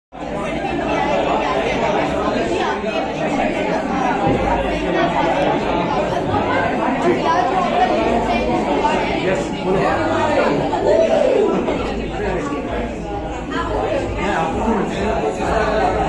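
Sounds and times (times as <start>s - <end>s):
babble of overlapping voices: 0.1s - 16.0s.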